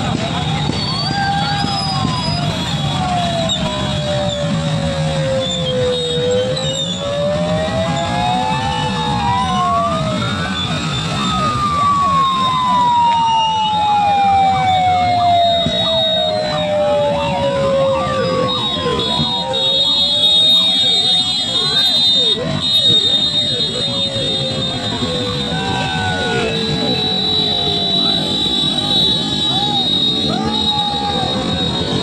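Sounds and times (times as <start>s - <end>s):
motorcycle engines: 0.0s - 32.0s
siren wailing: 0.0s - 32.0s
crowd shouting: 18.0s - 32.0s.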